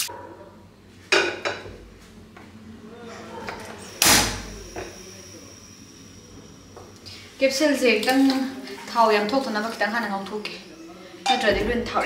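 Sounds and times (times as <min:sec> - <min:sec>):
gas burner hissing: 0:03.5 - 0:12.0.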